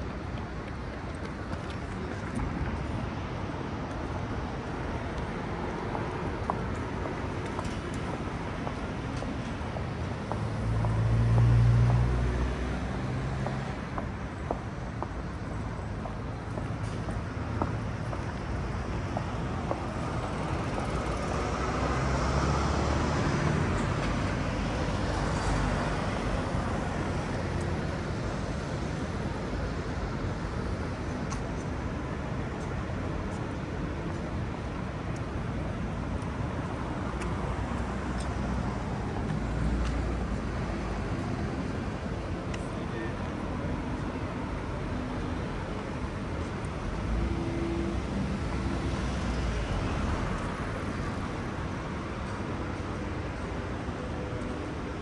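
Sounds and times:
road traffic hum: 0.0 - 55.0.

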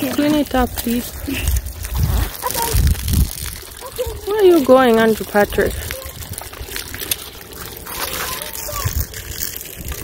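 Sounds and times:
water splashing from garden hose: 0.0 - 10.0.

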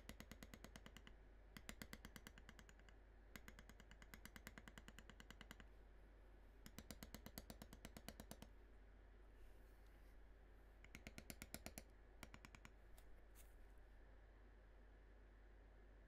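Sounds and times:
maul tapping leather tool: 0.0 - 5.7, 6.6 - 8.5, 10.8 - 13.1.

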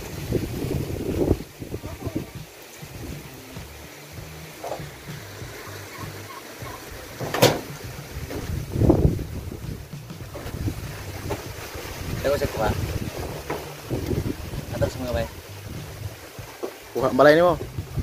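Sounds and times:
wind rumbling on microphone: 0.0 - 18.0
thump: 7.2 - 8.6.

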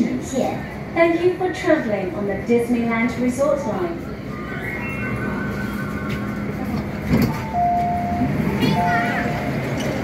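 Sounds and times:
two-tone door chime: 4.4 - 9.6
train door gear clunk: 6.8 - 8.9.

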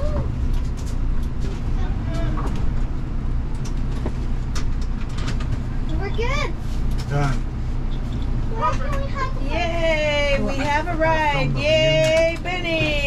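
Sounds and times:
motorhome engine rumbling: 0.0 - 13.0.

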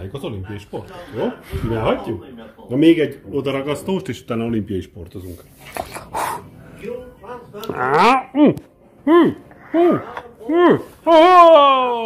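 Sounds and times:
person making wordless vocal sounds: 7.6 - 11.0.

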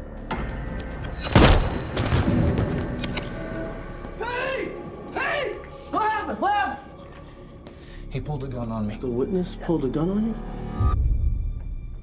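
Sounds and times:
tense film score: 0.0 - 12.0.

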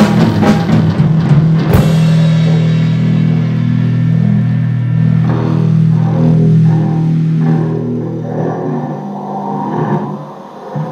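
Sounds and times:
electric guitar and bass droning chord: 0.0 - 10.9.

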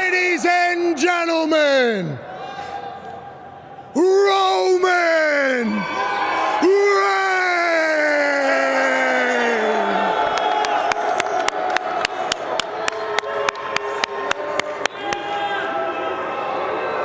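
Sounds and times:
man shouting like an announcer: 0.0 - 2.2, 3.9 - 10.2
crowd cheering: 0.0 - 3.2, 4.0 - 17.0.

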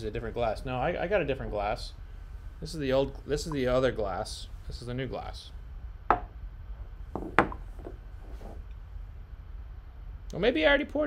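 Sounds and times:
glass knocking on wooden desk: 6.1 - 6.3, 7.1 - 8.0
glassware handling: 6.1 - 6.3.

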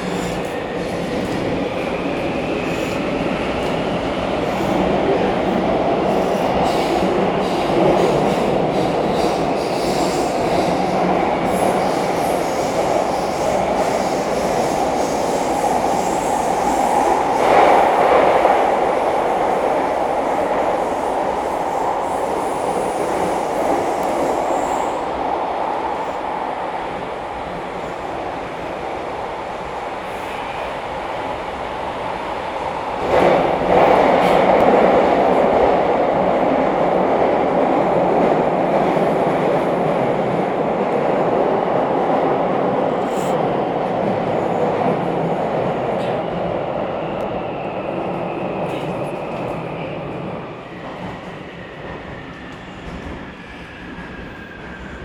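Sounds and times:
metro train rumbling on track: 0.0 - 55.0.

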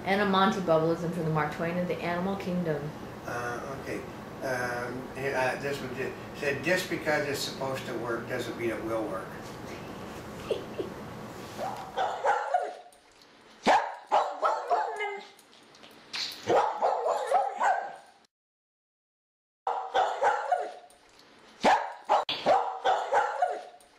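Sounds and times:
dog barking: 11.6 - 12.9, 13.6 - 15.3, 16.4 - 18.1, 19.7 - 20.9, 21.6 - 23.8.

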